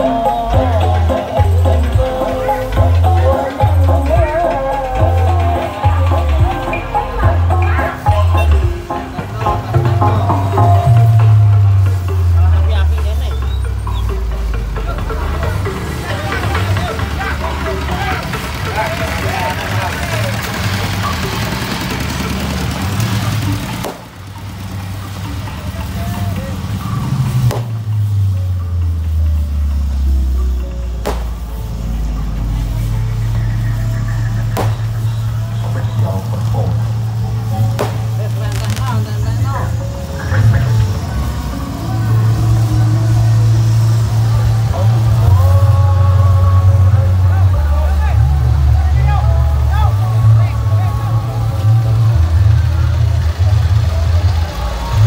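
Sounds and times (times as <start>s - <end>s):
bass-heavy music over speakers: 0.0s - 55.0s
voices: 0.0s - 55.0s.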